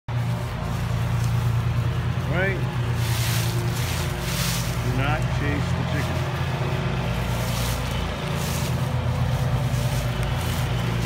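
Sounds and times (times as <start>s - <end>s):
low motor hum: 0.1s - 11.0s.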